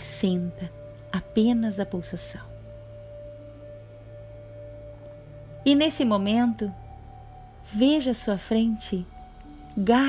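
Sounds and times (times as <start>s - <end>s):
held pure tone: 0.0s - 10.0s
low even drone: 0.0s - 10.0s.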